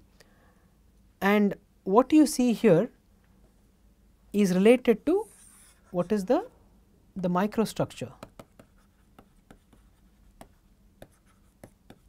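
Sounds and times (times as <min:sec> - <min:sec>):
stylus tapping on pen tablet: 0:08.2 - 0:12.0.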